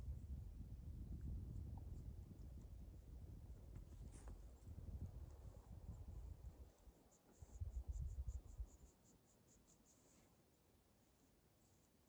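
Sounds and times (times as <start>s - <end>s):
low rumbling on microphone: 0.0s - 6.7s
insect chirping: 7.1s - 10.1s.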